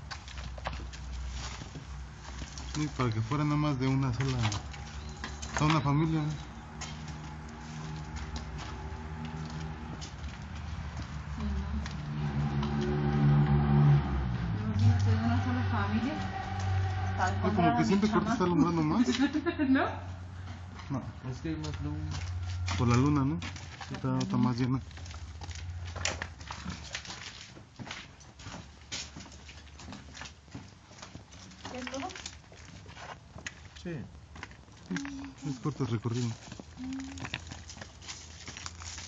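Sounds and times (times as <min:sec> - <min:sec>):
footsteps on hard floor: 0:06.6 - 0:12.9, 0:25.2 - 0:33.2.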